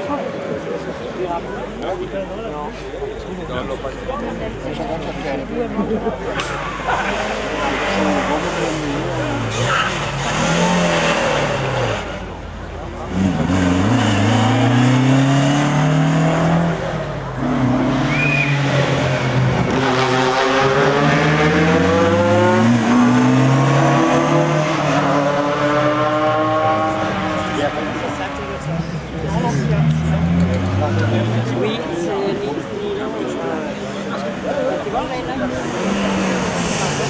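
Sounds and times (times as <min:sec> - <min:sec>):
rally car engine revving: 0:05.8 - 0:31.9, 0:33.6 - 0:37.0.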